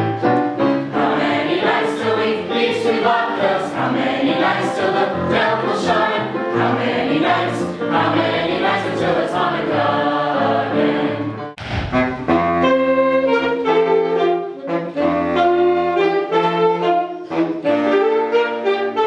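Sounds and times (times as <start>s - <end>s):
instrumental accompaniment: 0.0s - 19.0s
choir singing: 0.8s - 11.6s.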